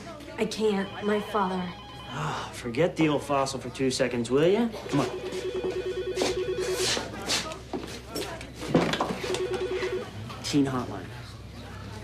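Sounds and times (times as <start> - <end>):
telephone ringing warbling trill: 0.8 - 2.2, 9.3 - 10.1.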